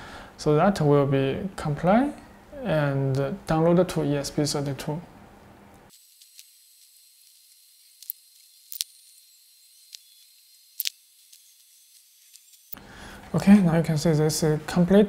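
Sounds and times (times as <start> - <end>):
small sharp ticks: 5.9 - 12.8
thin high hiss: 5.9 - 12.9.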